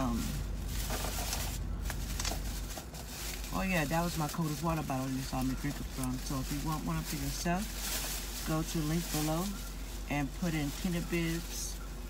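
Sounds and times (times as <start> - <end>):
light rustling: 0.0 - 12.0
steady low hum: 0.0 - 12.0.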